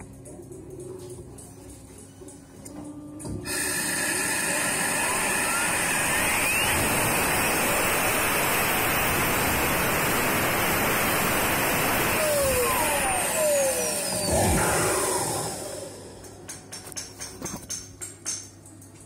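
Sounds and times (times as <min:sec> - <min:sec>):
turbocharger spinning whine: 0:04.0 - 0:16.2.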